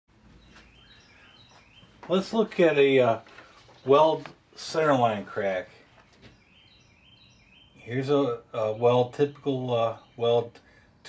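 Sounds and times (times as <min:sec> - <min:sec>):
faint high wavering chirps: 0:00.4 - 0:02.0.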